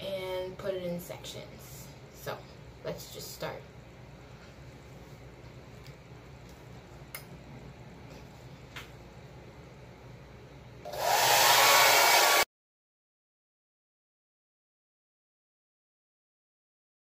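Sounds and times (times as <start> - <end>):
hair dryer running: 10.8 - 12.5.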